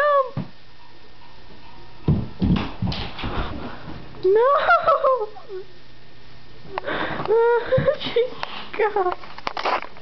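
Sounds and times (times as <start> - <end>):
bumps and scuffles: 2.0 - 4.2
heavy thud on wooden floor: 2.1 - 3.7.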